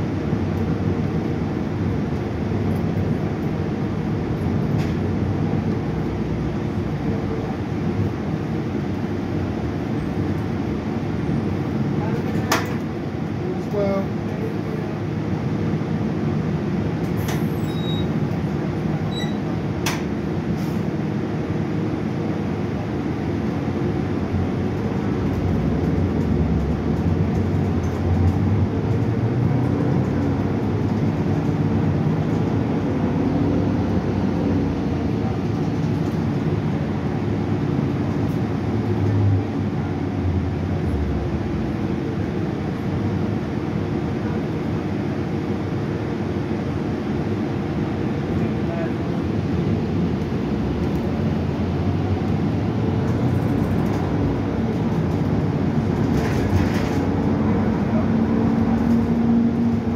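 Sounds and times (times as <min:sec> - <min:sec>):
bus engine and road noise: 0:00.0 - 0:59.9.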